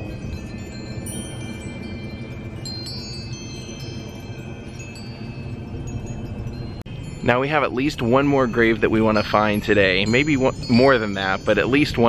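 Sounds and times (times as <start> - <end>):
low steady rumble: 0.0 - 12.0
wind chimes ringing: 0.0 - 12.0.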